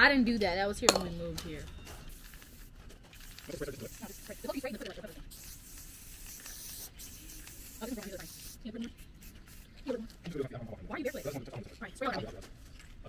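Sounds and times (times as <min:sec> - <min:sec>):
spray paint can hissing: 0:02.0 - 0:10.2, 0:10.9 - 0:12.1.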